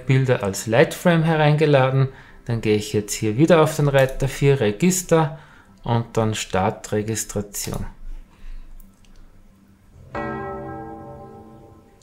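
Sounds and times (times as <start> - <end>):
bell-like computer alert chime: 10.1 - 12.0.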